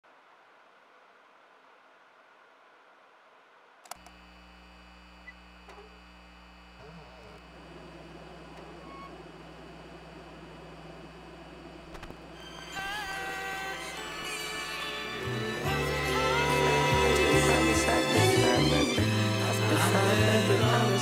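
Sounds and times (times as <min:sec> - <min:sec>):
record player low hum: 0:00.1 - 0:21.0
record player click: 0:11.8 - 0:12.3.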